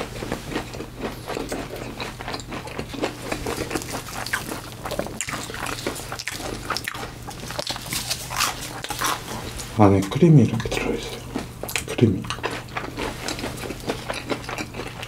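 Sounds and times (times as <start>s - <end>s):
crunchy chewing: 0.0s - 15.0s
steady low hum: 0.0s - 15.0s.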